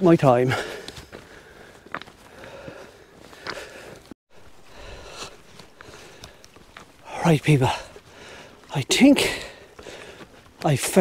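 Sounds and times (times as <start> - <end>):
footsteps on stony path: 0.0 - 11.0.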